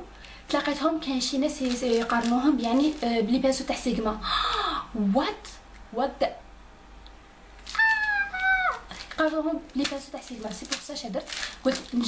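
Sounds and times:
woman squealing: 7.7s - 8.9s.

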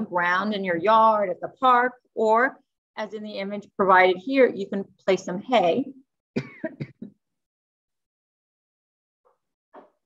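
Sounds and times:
woman clearing her throat: 6.4s - 7.1s.

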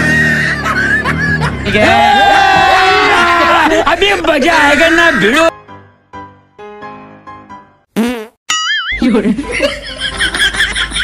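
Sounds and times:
laughter: 0.3s - 1.7s, 9.0s - 11.0s
fart sound: 8.0s - 8.4s.

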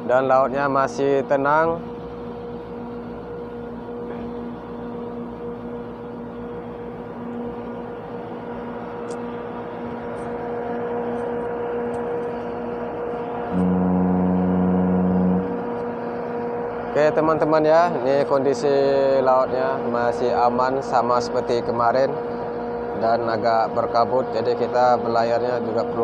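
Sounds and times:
ship engine and machinery hum: 0.0s - 26.0s
deep steady pitched tone: 7.6s - 18.0s.

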